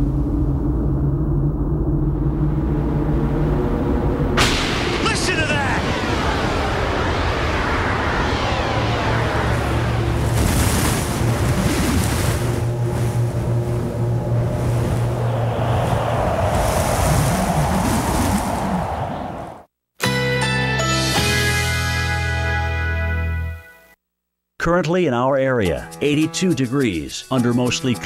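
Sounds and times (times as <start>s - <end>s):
low steady drone: 0.0s - 16.3s
rushing storm wind: 0.0s - 19.7s
sweeping whooshes: 0.1s - 19.5s.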